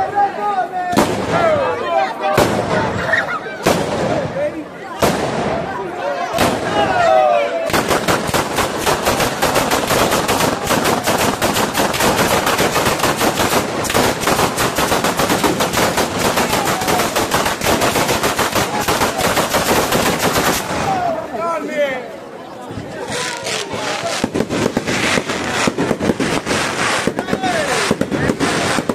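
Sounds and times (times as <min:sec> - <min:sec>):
firecrackers crackling: 0:00.9 - 0:01.7, 0:02.3 - 0:21.3, 0:22.8 - 0:28.9
people shouting: 0:04.8 - 0:08.0, 0:15.8 - 0:19.5, 0:20.6 - 0:21.6.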